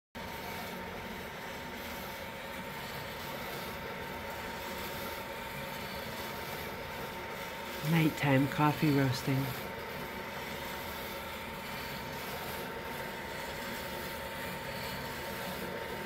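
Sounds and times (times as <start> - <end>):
coffee roaster whirring: 0.2 - 16.0
faint motor and fan hum: 0.2 - 16.0.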